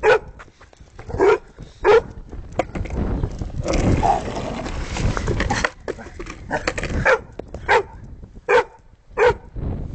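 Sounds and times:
dog barking: 0:00.0 - 0:00.4, 0:01.2 - 0:02.1, 0:07.0 - 0:09.5.

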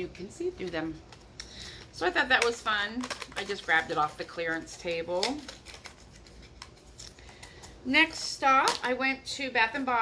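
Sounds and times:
woman speaking: 0:00.0 - 0:01.2, 0:01.9 - 0:05.6, 0:07.8 - 0:10.0
items clicking and rustling: 0:00.6 - 0:09.0.

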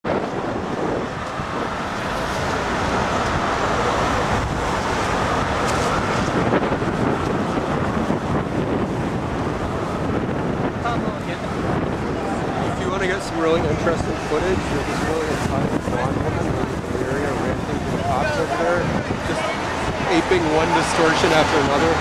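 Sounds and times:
city street traffic: 0:00.0 - 0:22.0
wind buffeting microphone: 0:00.0 - 0:22.0
faint voices: 0:00.1 - 0:22.0.

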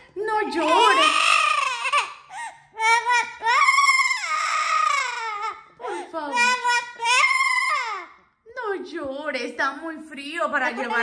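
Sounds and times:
parrot imitating crying baby: 0:00.6 - 0:08.1.

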